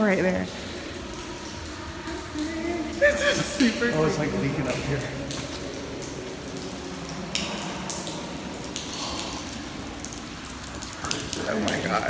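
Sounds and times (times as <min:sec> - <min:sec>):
running water hiss: 0:00.0 - 0:12.0
sharp water drips: 0:00.0 - 0:12.0.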